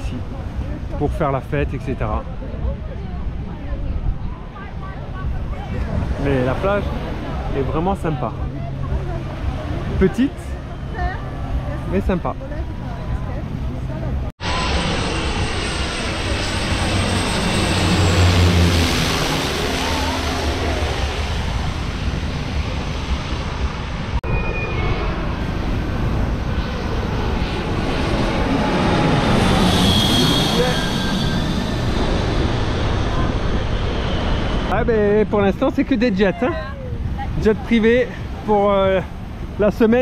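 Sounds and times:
jet passing overhead: 0:00.0 - 0:40.0.

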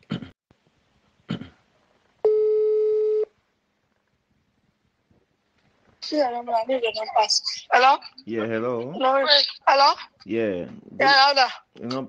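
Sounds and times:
telephone line beep: 0:02.2 - 0:03.3.

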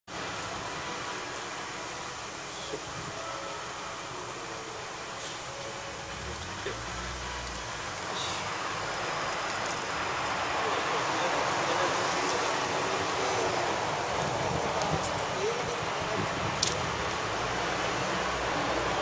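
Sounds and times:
distant traffic hiss: 0:00.1 - 0:19.0.

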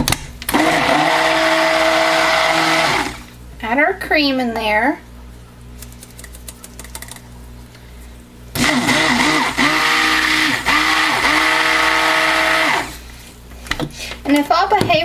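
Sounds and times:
stick blender whining: 0:00.5 - 0:03.3, 0:08.6 - 0:13.0.

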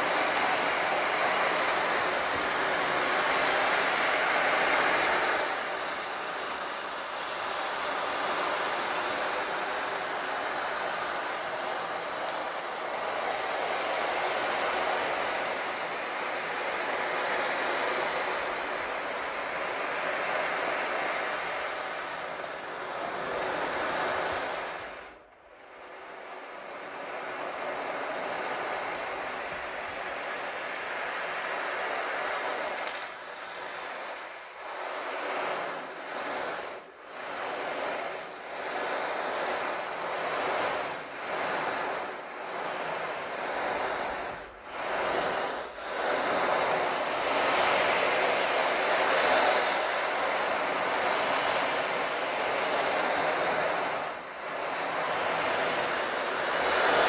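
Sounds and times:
sea drum beads rolling: 0:00.0 - 0:06.2, 0:27.7 - 0:54.0.

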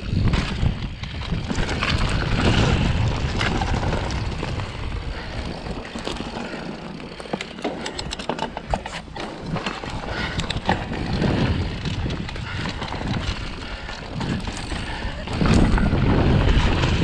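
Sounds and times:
wind buffeting microphone: 0:00.0 - 0:06.6, 0:09.5 - 0:17.0
bike clicks and rattles: 0:00.0 - 0:17.0
bike tyre noise: 0:00.0 - 0:17.0.

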